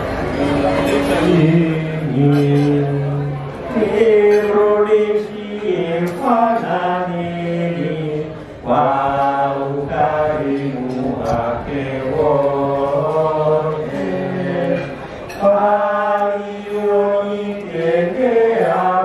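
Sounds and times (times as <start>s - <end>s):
men singing chant-like song: 3.8s - 19.0s.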